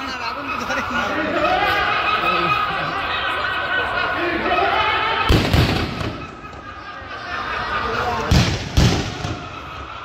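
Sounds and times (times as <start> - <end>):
fireworks exploding: 5.3 - 6.6, 8.2 - 9.6.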